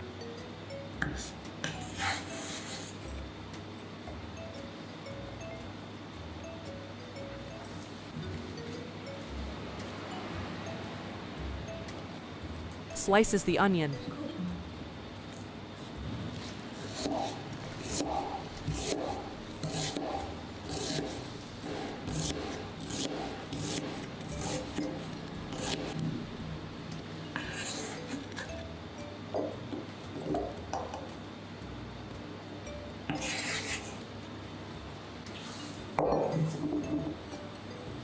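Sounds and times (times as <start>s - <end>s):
cleaver scraping board: 20.7s - 21.2s, 27.4s - 28.3s, 33.1s - 34.0s.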